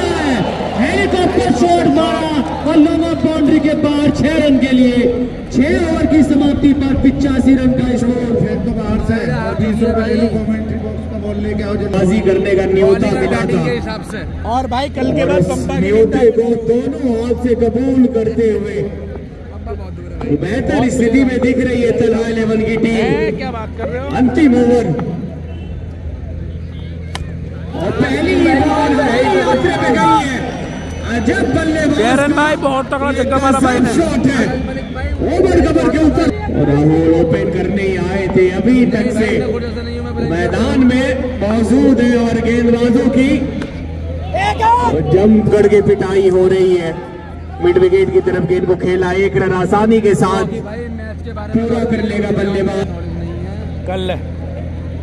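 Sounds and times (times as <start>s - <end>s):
man commentating: 0.0s - 19.0s, 27.7s - 43.5s
faint crowd noise: 0.0s - 55.0s.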